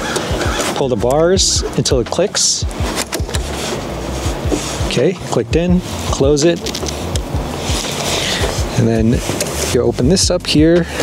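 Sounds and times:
background music with steady beat: 0.0s - 11.0s.

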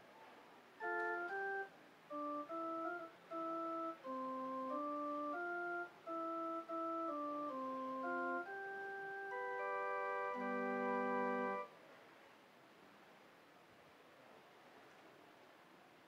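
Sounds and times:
organ playing a hymn: 0.8s - 11.7s.

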